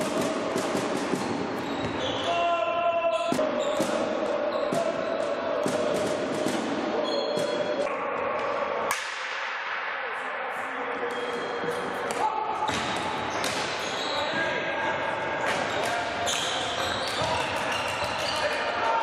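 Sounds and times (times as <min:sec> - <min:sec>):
crowd and player voices: 0:00.0 - 0:19.0
hockey sticks hitting ball: 0:08.3 - 0:09.8, 0:11.1 - 0:14.1.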